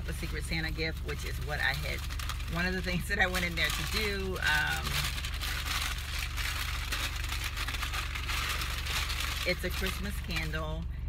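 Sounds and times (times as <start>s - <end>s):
tissue paper rustling and crinkling: 0.0s - 10.7s
low hum: 0.0s - 11.0s.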